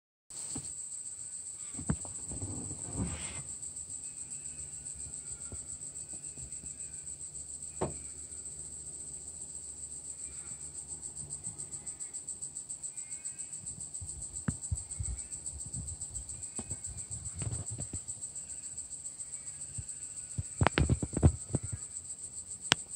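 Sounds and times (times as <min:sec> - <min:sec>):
insect chorus buzzing: 0:00.3 - 0:22.9
knocks: 0:07.8 - 0:08.1.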